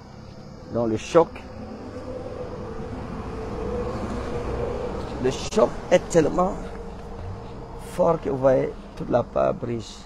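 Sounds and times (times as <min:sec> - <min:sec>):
road vehicle rumble: 0:00.0 - 0:10.0.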